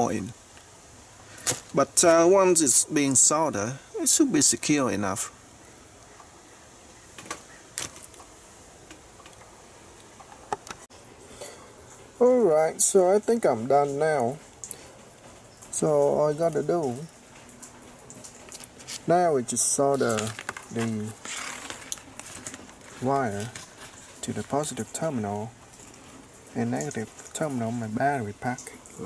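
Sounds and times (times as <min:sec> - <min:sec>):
rustle: 0:00.0 - 0:29.0.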